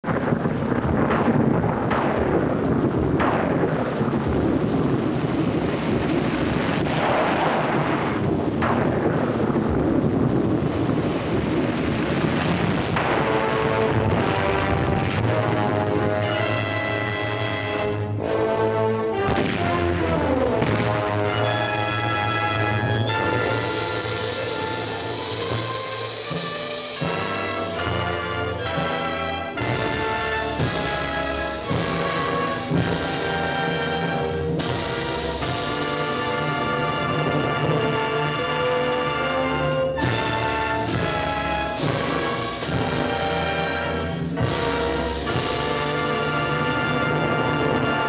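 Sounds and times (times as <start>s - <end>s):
rain and storm roar: 0.0s - 48.0s
sharp thunder cracks: 0.0s - 48.0s
dramatic orchestral music: 12.8s - 48.0s.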